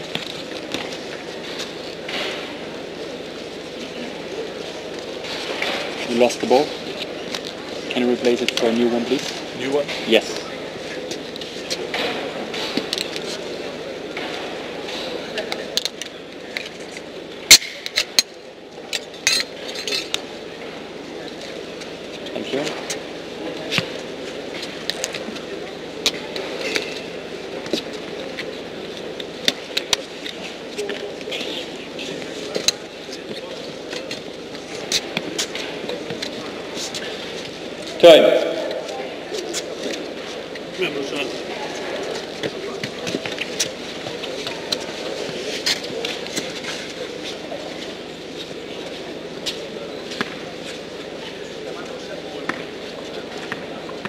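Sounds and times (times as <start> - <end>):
voices murmuring in a hall: 0.0 - 54.0.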